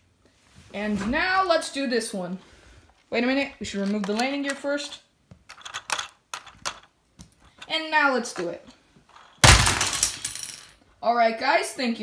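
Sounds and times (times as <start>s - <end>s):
plastic bricks clattering: 5.5s - 6.9s, 9.1s - 10.8s
plastic toy crashing on floor: 9.4s - 10.8s.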